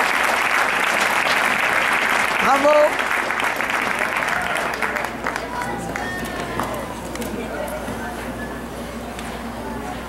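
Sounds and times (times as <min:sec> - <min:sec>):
crowd applauding: 0:00.0 - 0:06.8
voices in crowd: 0:01.0 - 0:10.0.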